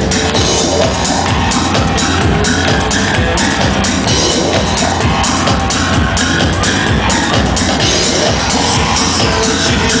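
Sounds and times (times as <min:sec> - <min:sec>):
live electronic dance music: 0:00.0 - 0:10.0.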